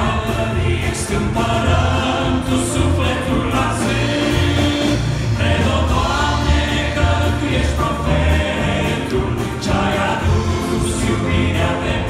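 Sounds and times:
male vocal group singing in harmony: 0.0 - 12.0
piano: 0.0 - 12.0.

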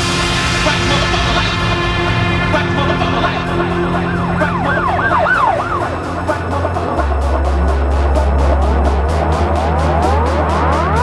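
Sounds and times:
electronic dance music: 0.0 - 11.0
siren sound effect sweeping: 0.0 - 11.0.

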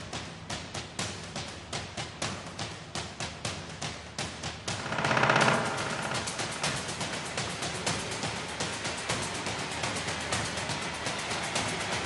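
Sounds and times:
percussive hits: 4.5 - 8.0
rattling percussion roll: 4.6 - 9.4.

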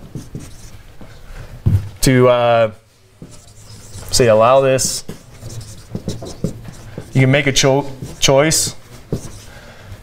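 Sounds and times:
marker pen writing on whiteboard: 0.0 - 0.8, 3.2 - 9.6.

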